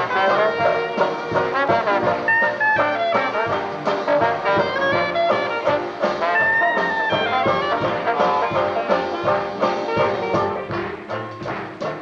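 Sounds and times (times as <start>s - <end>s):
jazz band playing live: 0.0s - 12.0s.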